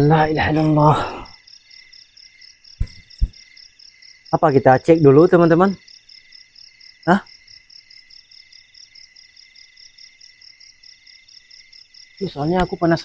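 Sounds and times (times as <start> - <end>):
crickets chirring: 0.0 - 13.0.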